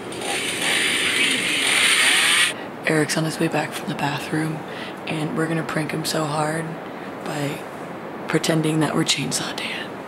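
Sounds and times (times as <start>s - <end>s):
steady hissing rush: 0.0s - 2.8s.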